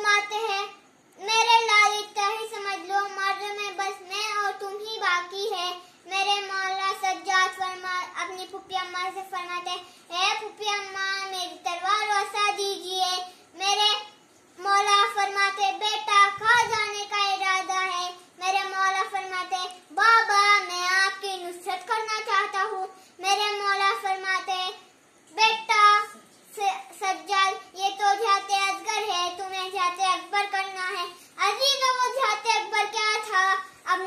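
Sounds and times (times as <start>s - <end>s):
boy chanting a lament: 0.0s - 14.0s, 14.6s - 34.0s.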